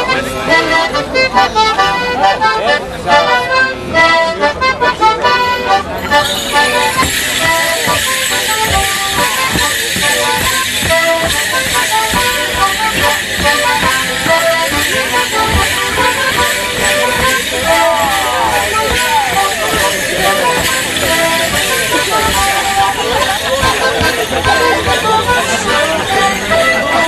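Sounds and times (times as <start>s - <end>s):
leg bells jingling: 3.4s - 27.0s
squeezebox dance tune: 6.1s - 27.0s.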